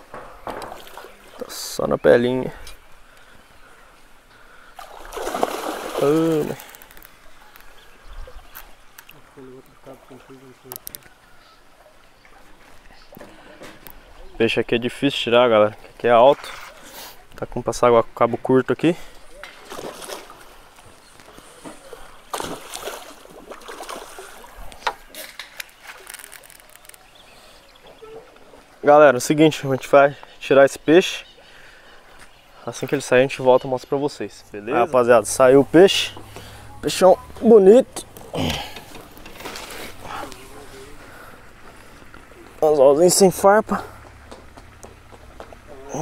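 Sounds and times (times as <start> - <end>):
fish splashing and thrashing in water: 4.8 - 7.2, 19.4 - 27.2.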